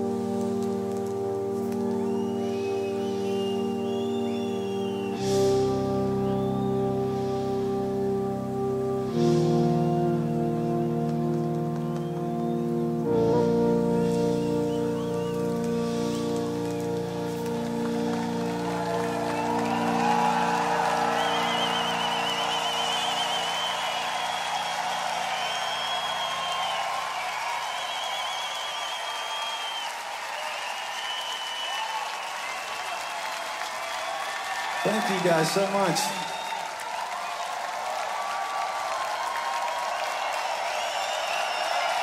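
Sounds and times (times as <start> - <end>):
crowd cheering and applause: 0.0 - 7.4, 14.0 - 42.0
held synthesizer chord: 0.0 - 26.3
audience whistles: 1.7 - 7.8, 11.8 - 12.8, 13.8 - 42.0.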